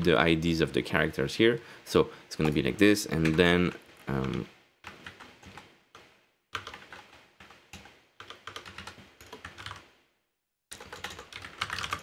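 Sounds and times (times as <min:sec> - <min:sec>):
typing on computer keyboard: 0:04.2 - 0:09.9, 0:10.7 - 0:12.0.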